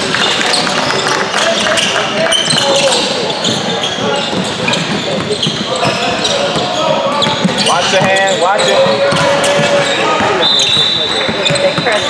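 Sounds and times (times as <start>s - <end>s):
sneaker squeaks: 0.0s - 12.0s
shouting voices echoing: 0.3s - 12.0s.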